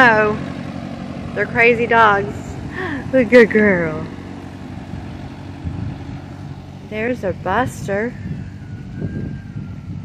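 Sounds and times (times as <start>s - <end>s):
distant tractor engine: 0.0s - 10.0s.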